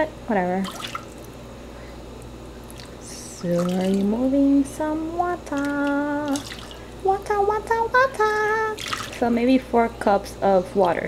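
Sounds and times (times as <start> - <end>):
steady low hum: 0.0 - 11.0
water spooned from pot: 2.6 - 4.3, 5.4 - 6.9, 8.4 - 9.3.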